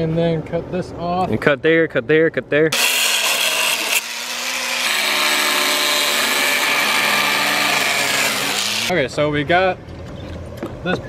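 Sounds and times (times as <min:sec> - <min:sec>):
angle grinder cutting sheet metal: 0:02.7 - 0:08.9.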